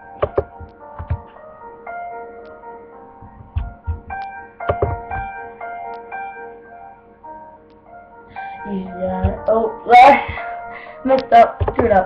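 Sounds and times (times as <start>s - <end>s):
sustained keyboard notes: 0.0s - 12.0s.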